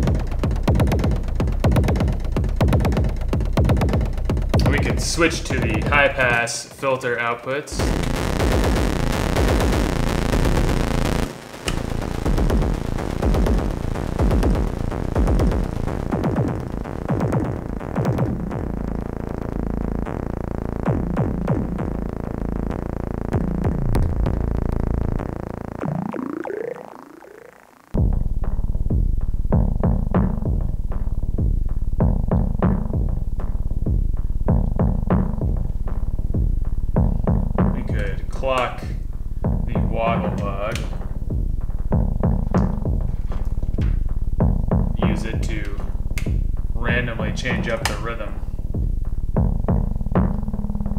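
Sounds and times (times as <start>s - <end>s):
synthesizer drum pattern: 0.0s - 7.0s, 7.7s - 50.9s
high synth chirps: 25.8s - 27.9s.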